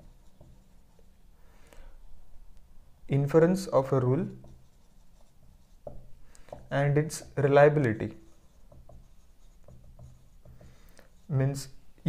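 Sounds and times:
marker pen writing on whiteboard: 0.0 - 1.2, 3.4 - 11.8.

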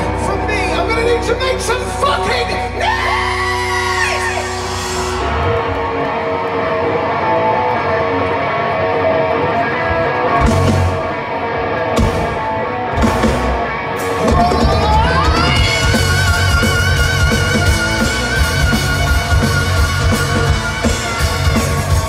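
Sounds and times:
hard rock band playing live: 0.0 - 22.0.

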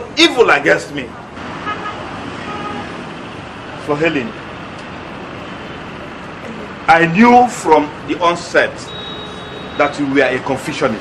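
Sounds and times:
distant road traffic: 0.0 - 11.0.

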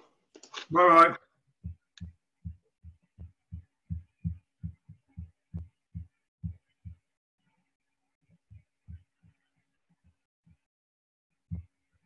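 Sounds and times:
rapid low thumps: 1.6 - 7.1.

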